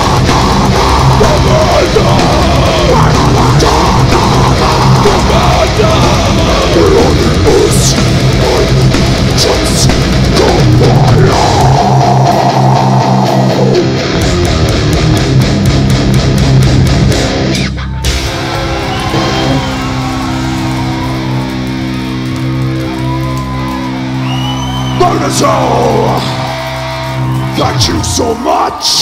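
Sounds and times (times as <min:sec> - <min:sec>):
heavy metal band playing live: 0:00.0 - 0:29.0.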